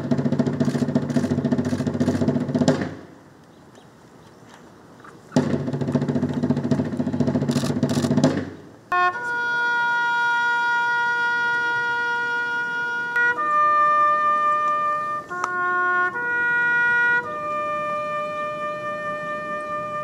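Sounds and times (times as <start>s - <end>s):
sharp drum strokes: 0.0s - 3.1s, 5.3s - 8.8s
bugle call with long held notes: 8.9s - 20.0s.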